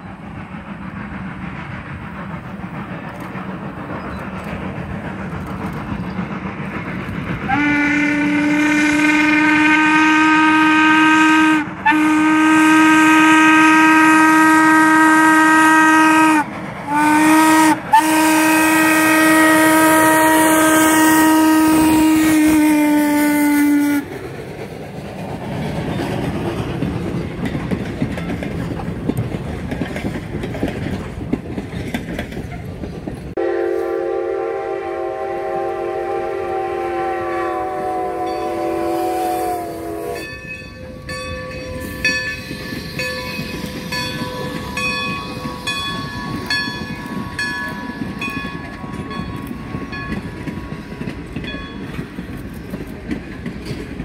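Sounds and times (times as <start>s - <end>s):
train wheels rumbling on rails: 0.0s - 54.0s
steam locomotive whistle: 7.5s - 24.1s, 33.4s - 51.1s
high-pitched wheel squeals: 38.2s - 50.3s.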